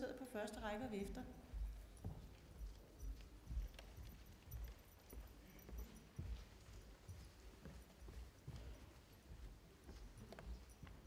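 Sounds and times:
faint footsteps: 0.8 - 11.0.

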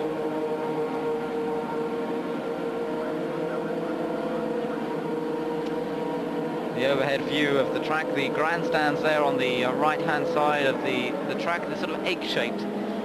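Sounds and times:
steady mechanical drone: 0.0 - 13.0.

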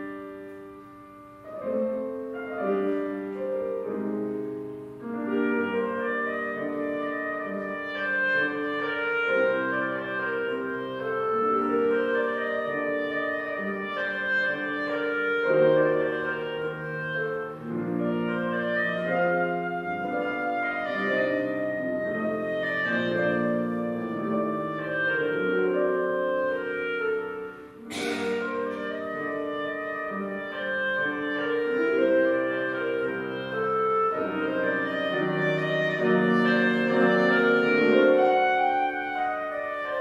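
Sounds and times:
clarinet melody: 0.0 - 40.0
grand piano accompaniment: 0.0 - 40.0.

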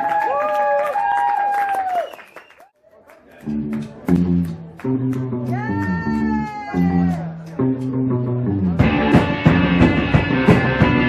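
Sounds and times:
live band playing: 3.4 - 11.0.

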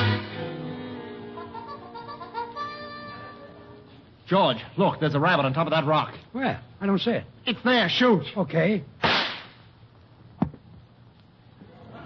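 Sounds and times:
gunshot crack: 9.0 - 9.6.

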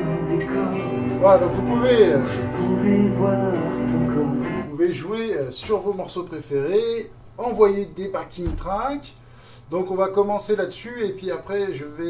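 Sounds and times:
man talking: 4.0 - 12.0.

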